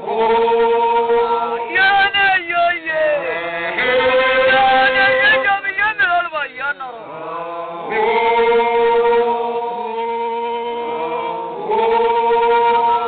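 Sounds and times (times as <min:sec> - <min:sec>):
group singing voices alone: 0:00.0 - 0:13.0.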